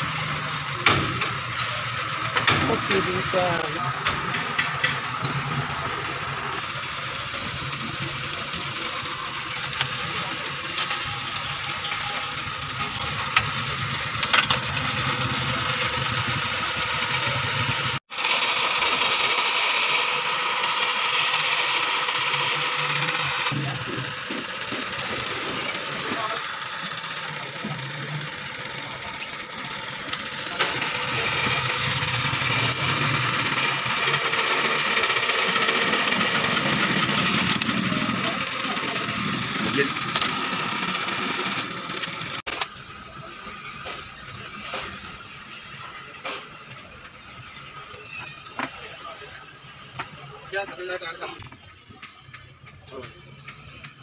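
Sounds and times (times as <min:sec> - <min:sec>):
boring machine cutting metal: 0:00.0 - 0:52.1.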